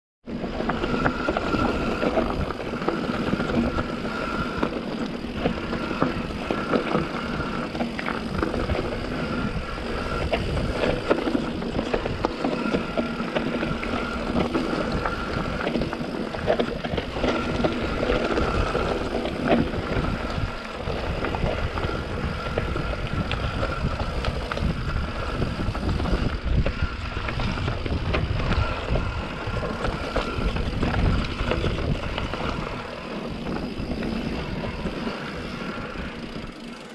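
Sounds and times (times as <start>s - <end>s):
wind on microphone: 0.3s - 36.7s
bike frame rattling: 0.3s - 36.9s
bike tyres rolling over dirt: 0.3s - 36.9s.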